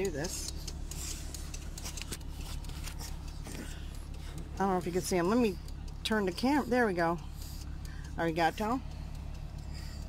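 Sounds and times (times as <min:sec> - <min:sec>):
engine idling: 0:00.0 - 0:10.0
rustling and phone clicks: 0:00.7 - 0:04.4.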